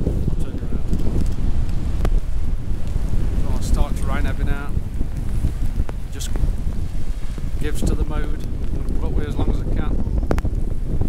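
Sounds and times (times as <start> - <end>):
wind buffeting microphone: 0.0 - 11.0
person's voice: 3.4 - 4.8, 7.6 - 10.0.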